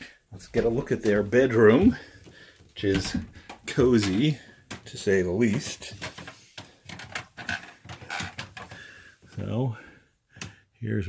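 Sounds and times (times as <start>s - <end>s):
handheld phone being handled: 5.5s - 8.8s.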